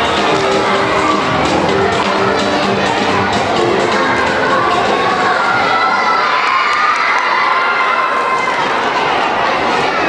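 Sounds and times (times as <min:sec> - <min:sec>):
audience cheering and shouting: 0:00.0 - 0:10.0.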